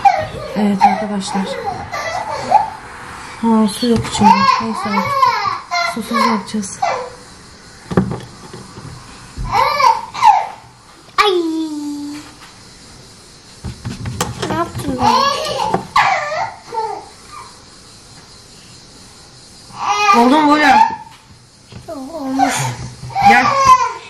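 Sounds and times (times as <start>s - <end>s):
child babbling: 21.9s - 24.0s.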